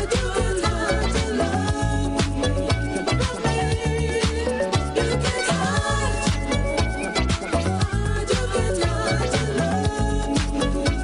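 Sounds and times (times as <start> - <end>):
funk disco dance music: 0.0 - 11.0.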